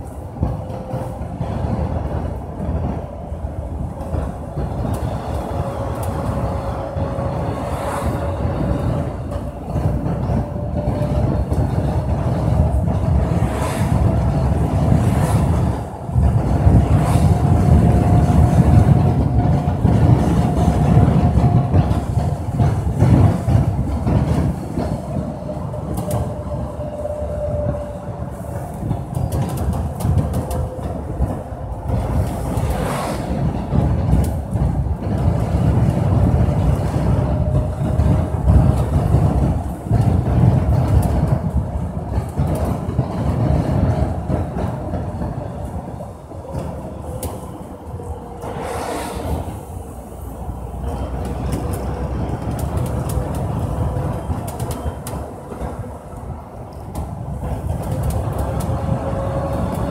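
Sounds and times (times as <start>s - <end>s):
vehicle engine and road rumble: 0.0s - 59.9s.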